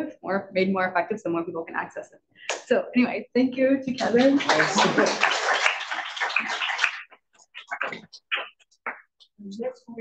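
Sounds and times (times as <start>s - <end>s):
audience applauding: 4.2s - 7.2s.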